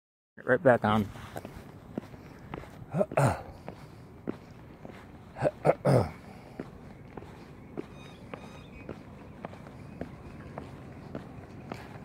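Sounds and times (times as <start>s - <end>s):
low background noise: 0.4s - 12.0s
footsteps on concrete: 0.8s - 12.0s.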